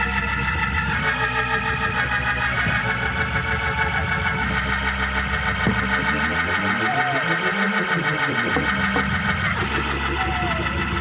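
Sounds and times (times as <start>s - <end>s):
gospel organ playing chords: 0.0s - 11.0s
sharp percussive hits: 5.5s - 7.0s.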